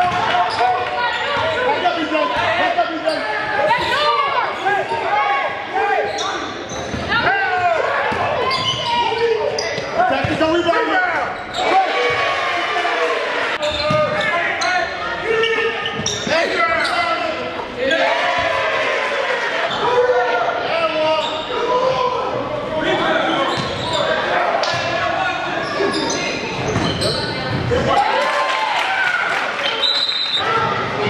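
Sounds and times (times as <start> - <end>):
players and spectators talking: 0.0 - 31.0.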